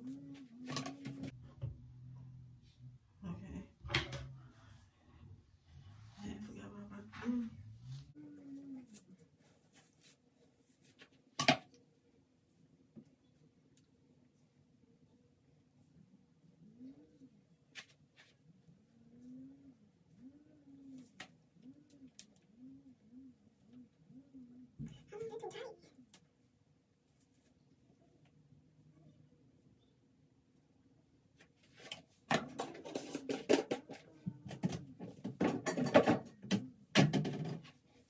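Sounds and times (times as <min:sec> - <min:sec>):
woman humming softly: 0:06.7 - 0:09.2
rustling of handled items: 0:07.2 - 0:11.5
knocks of small items: 0:31.9 - 0:37.8.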